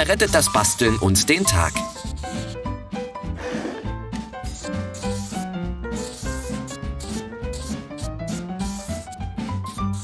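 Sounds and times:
marker scratching on paper: 0.0s - 2.7s, 4.2s - 10.0s
background music: 0.0s - 10.0s.

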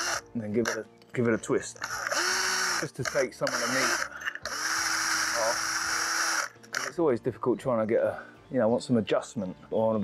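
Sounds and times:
drill grinding into metal: 0.0s - 0.8s, 1.8s - 7.0s.

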